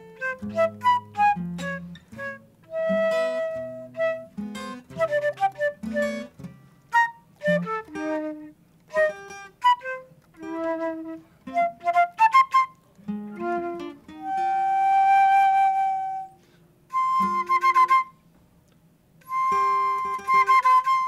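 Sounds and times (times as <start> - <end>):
plucked acoustic guitar: 0.0 - 16.1
flute playing: 0.0 - 18.2, 19.2 - 21.0.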